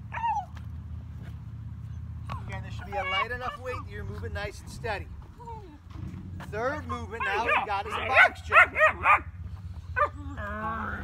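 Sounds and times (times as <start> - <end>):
low background hum: 0.0 - 11.0
puppy whining: 0.1 - 0.6, 2.8 - 3.9, 7.2 - 8.3.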